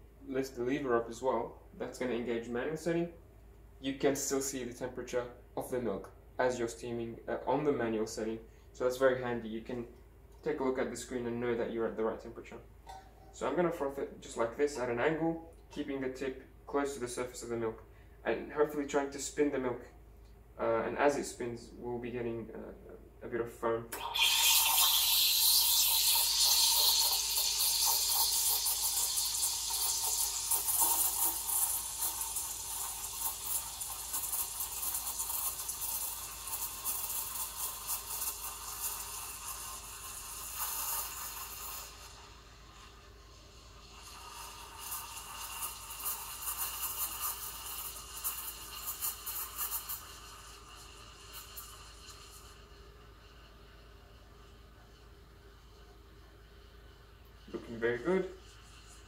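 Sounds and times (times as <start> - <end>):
steam wand frothing milk: 23.9 - 59.0.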